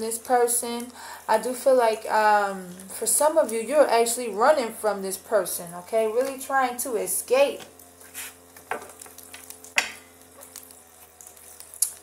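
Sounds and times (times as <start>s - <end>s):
cards rustling and scraping: 8.0s - 8.9s.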